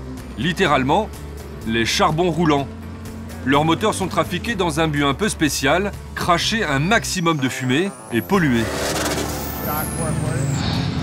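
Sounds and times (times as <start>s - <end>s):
background music: 0.0s - 11.0s
diesel engine rumbling: 0.0s - 11.0s.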